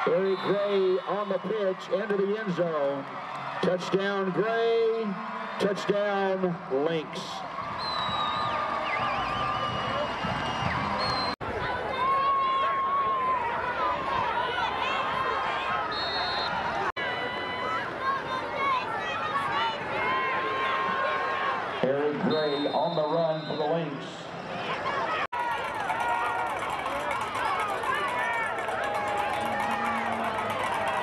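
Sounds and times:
stadium crowd shouting and cheering: 0.0s - 31.0s.

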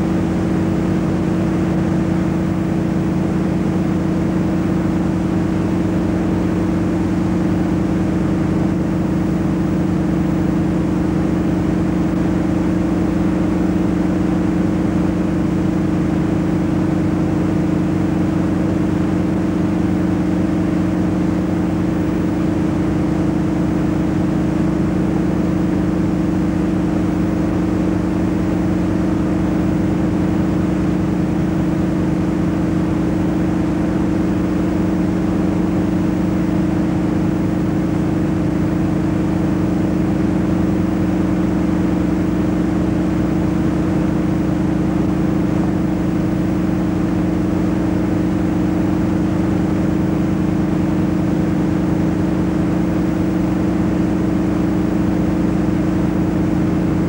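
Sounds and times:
loud low two-pitch hum: 0.0s - 57.0s.

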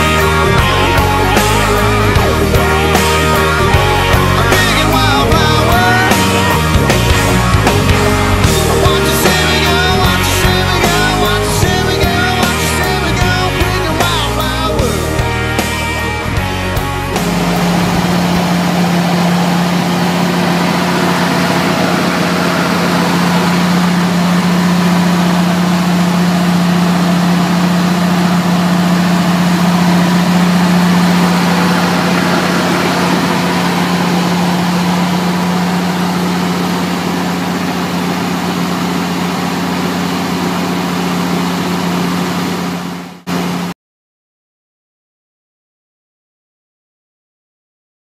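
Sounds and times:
pickup truck engine idling: 0.0s - 43.4s.

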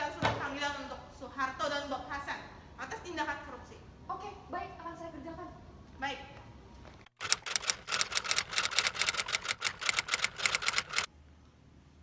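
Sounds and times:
typewriter keys clattering: 7.2s - 11.1s.

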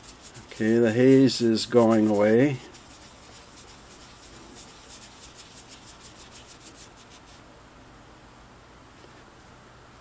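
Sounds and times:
cloth rubbing on enamel: 0.0s - 7.4s.

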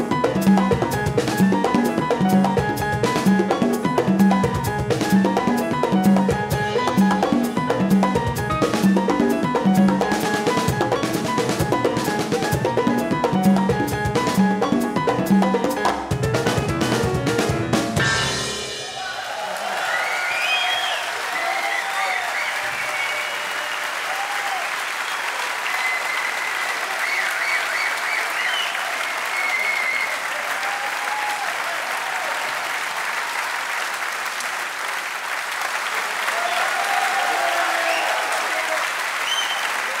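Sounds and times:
audience applauding: 18.7s - 40.0s
cheers and whistles: 19.0s - 32.7s, 36.3s - 40.0s.

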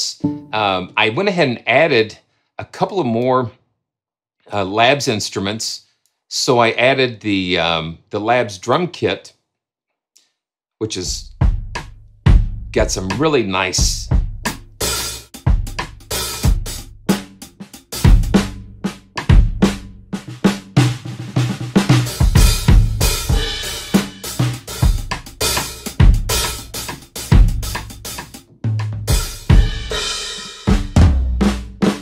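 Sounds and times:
drum kit hits: 0.0s - 1.0s.

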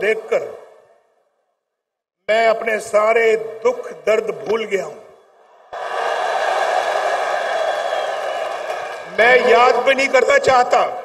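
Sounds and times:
large crowd cheering and shouting: 5.4s - 10.1s.

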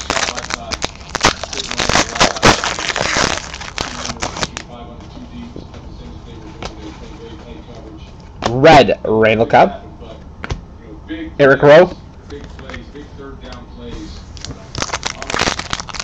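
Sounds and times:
foil wrappers crinkling: 0.0s - 4.7s, 14.3s - 16.0s
cards being handled: 14.3s - 16.0s.

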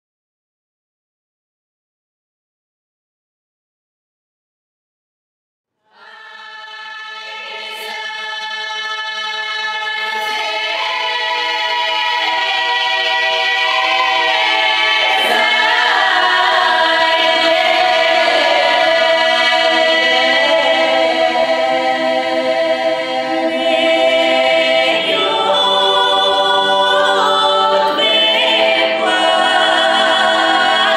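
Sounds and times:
women's choir singing in harmony: 5.9s - 30.9s.

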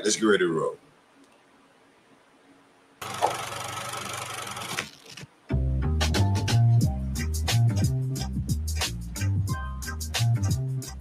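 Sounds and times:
mechanical whirring: 3.0s - 5.3s
music with heavy bass: 5.5s - 11.0s.

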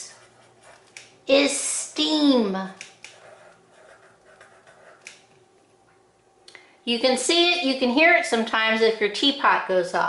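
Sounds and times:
marker writing on paper: 0.0s - 1.0s, 3.0s - 5.2s.

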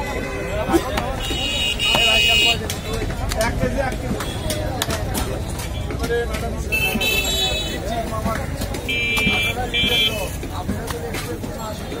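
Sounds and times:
high-pitched vehicle horn: 0.0s - 2.6s
voices: 0.0s - 12.0s.

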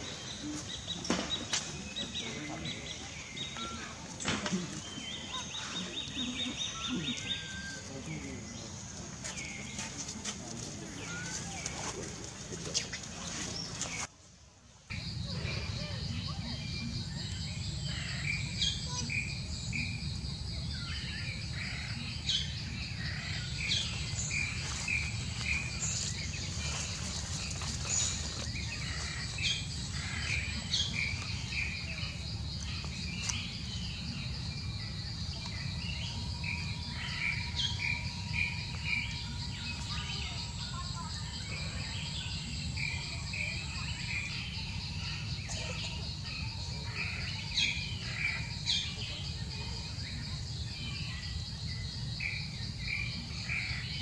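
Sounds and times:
small birds chirping: 0.0s - 14.2s, 14.9s - 54.0s.

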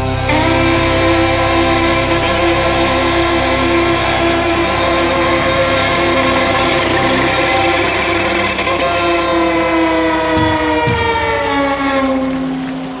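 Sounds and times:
folk metal band playing live: 0.0s - 13.0s
drum hits: 2.0s - 12.4s.

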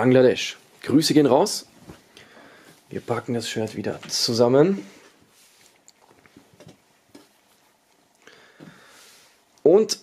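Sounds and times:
fabric rustling: 2.8s - 8.1s.

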